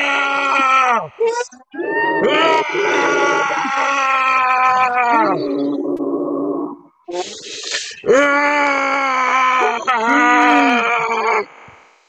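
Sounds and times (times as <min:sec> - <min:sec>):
people yelling: 0:00.0 - 0:05.5
long held cry: 0:00.0 - 0:05.6, 0:08.1 - 0:11.5.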